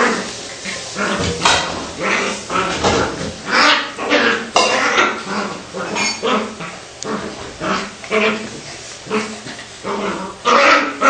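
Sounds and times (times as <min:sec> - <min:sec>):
dog whining: 0:03.5 - 0:11.0.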